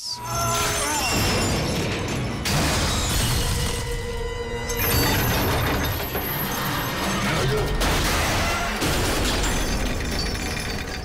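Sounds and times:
action film music: 0:00.0 - 0:11.0
crash and impact effects: 0:01.1 - 0:04.0.

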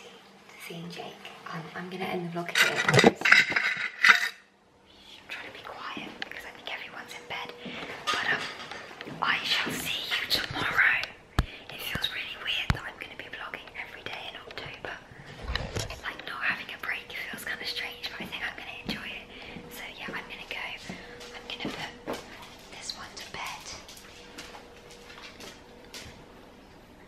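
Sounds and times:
woman whispering: 0:04.9 - 0:08.5, 0:09.2 - 0:15.1, 0:15.8 - 0:23.9.

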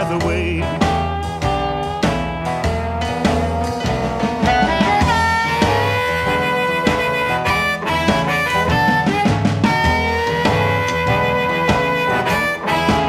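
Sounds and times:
bass: 0:00.0 - 0:13.0
drums: 0:00.0 - 0:13.0
harmonica bending notes: 0:00.0 - 0:13.0.

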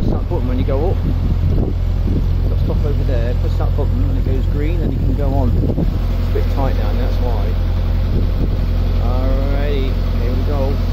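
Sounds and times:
boat engine humming: 0:00.0 - 0:10.9.

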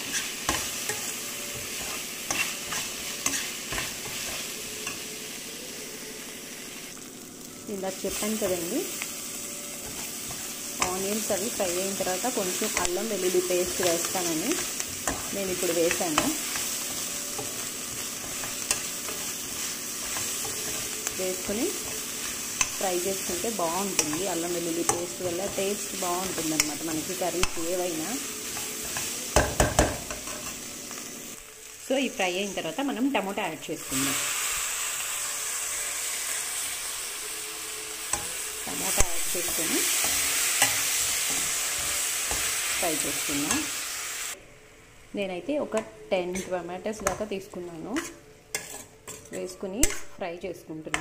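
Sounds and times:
metal spoon stirring and scraping: 0:00.0 - 0:05.1, 0:09.6 - 0:29.4, 0:38.1 - 0:43.8, 0:45.8 - 0:50.2
vegetables sizzling in oil: 0:00.0 - 0:51.0.

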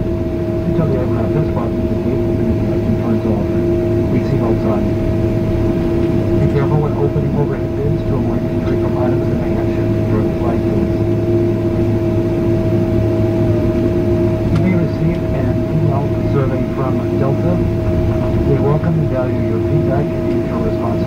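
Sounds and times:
airplane engine hum: 0:00.0 - 0:21.0
low rumble: 0:00.0 - 0:21.0
indistinct passenger voices: 0:00.6 - 0:12.0, 0:13.3 - 0:21.0.

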